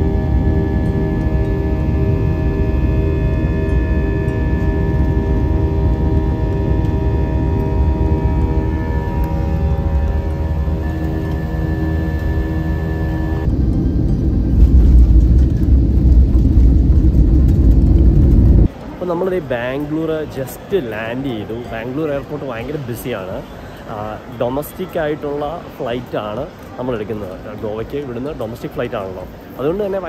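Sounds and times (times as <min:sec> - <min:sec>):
ambient music with held tones: 0:00.0 - 0:16.4
jet airliner rumbling on runway: 0:00.0 - 0:18.7.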